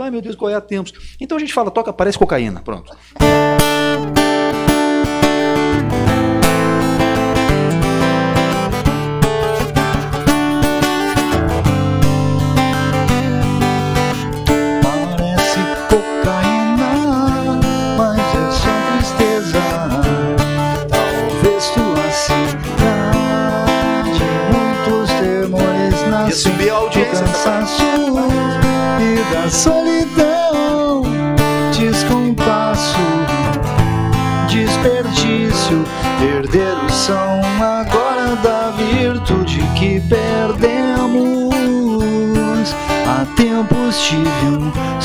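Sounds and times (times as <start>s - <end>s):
acoustic guitar strumming: 2.2s - 45.0s
man singing: 5.2s - 8.0s, 14.5s - 33.7s, 34.3s - 45.0s.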